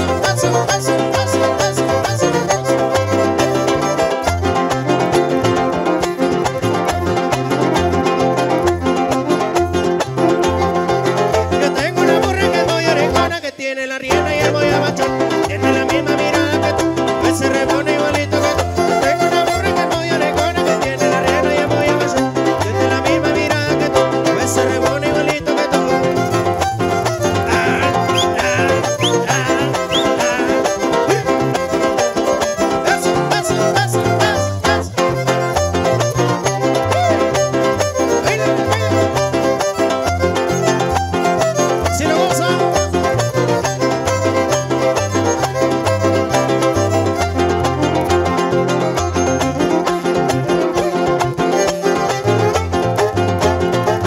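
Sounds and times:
string band playing: 0:00.0 - 0:54.0.

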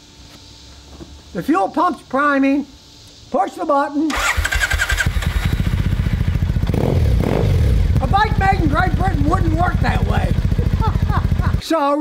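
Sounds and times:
electric starter cranking: 0:04.1 - 0:06.0
motorcycle engine idling: 0:04.2 - 0:11.7.

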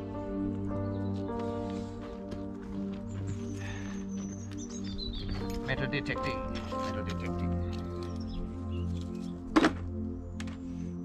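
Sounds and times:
background music: 0:00.0 - 0:11.0
magnet thunking on plastic bucket: 0:09.5 - 0:09.9.

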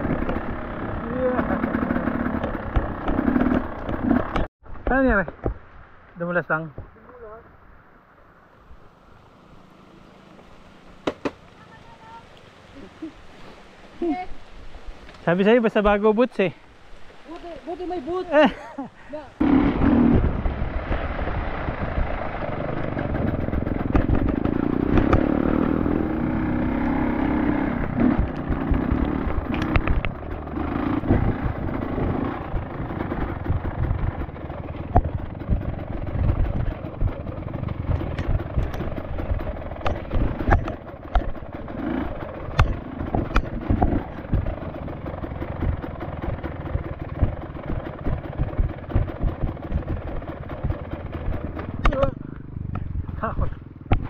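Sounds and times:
motorcycle engine running: 0:00.0 - 0:04.5, 0:19.1 - 0:54.0
sharp knocks and clatter: 0:11.0 - 0:11.4, 0:22.8 - 0:25.7, 0:28.1 - 0:54.0.

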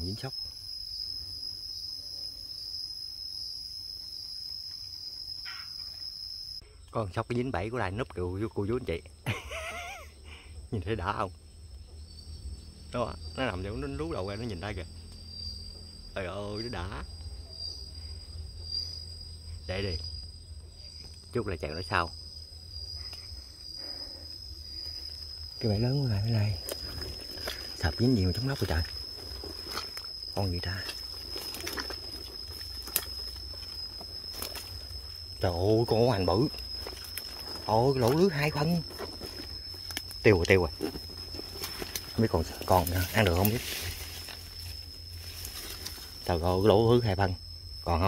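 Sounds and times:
insects buzzing: 0:00.0 - 0:48.0.

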